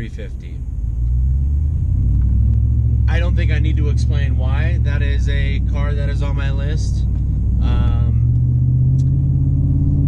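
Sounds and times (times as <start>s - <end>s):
road noise: 0.0s - 10.0s
truck engine rumble: 0.0s - 10.0s.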